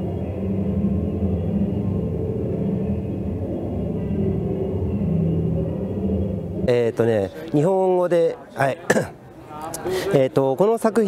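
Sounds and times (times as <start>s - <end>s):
dense drone of low sine tones: 0.0s - 8.1s.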